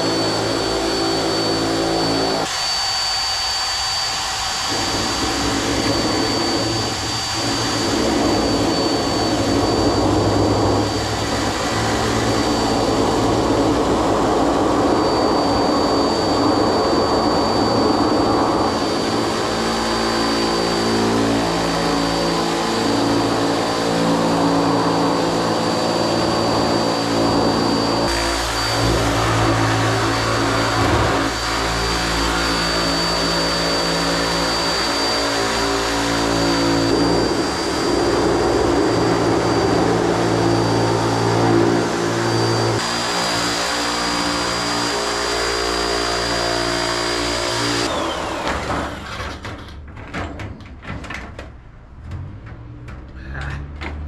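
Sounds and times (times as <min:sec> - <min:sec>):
electric metal shear whining: 0:00.0 - 0:49.7.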